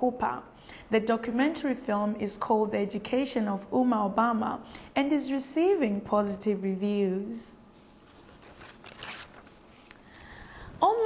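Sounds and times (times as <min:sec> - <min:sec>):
faint rustling and scraping: 0:07.6 - 0:10.1.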